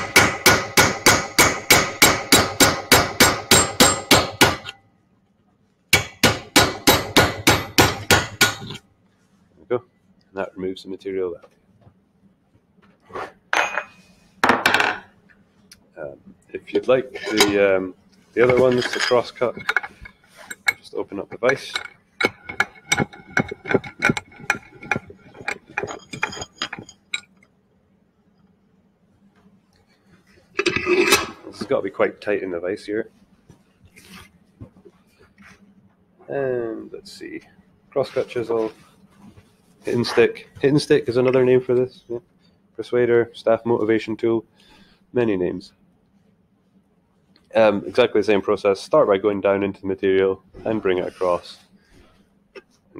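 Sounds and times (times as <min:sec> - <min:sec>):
hammer striking chisel on steel: 0:00.0 - 0:04.8, 0:06.0 - 0:08.8.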